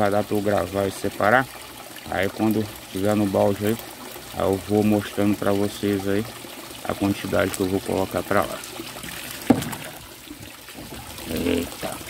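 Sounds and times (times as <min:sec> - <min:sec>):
water trickling: 0:00.0 - 0:12.0
sharp water slap: 0:09.4 - 0:10.0.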